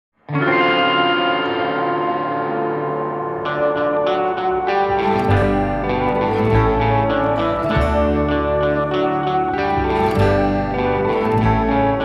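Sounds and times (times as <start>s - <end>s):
distorted electric guitar chord: 0.3s - 12.0s.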